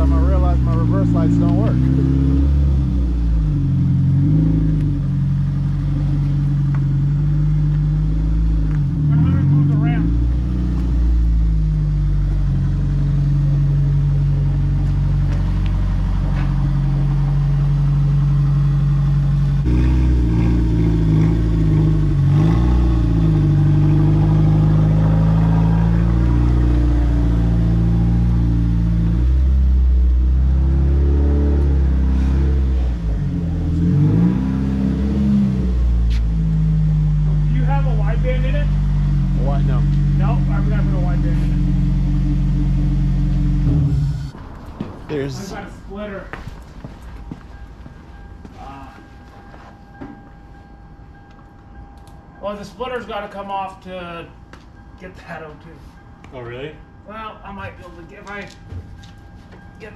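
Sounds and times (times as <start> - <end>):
car engine running at low revs: 0.0 - 45.7.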